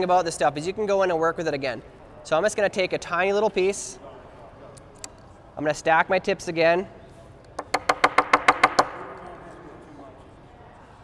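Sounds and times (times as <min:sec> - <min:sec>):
hair stacker tapping on bench: 0:07.6 - 0:09.0.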